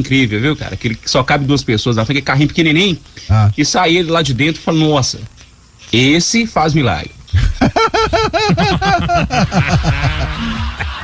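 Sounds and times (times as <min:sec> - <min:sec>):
laughter bursts: 0:07.4 - 0:11.0.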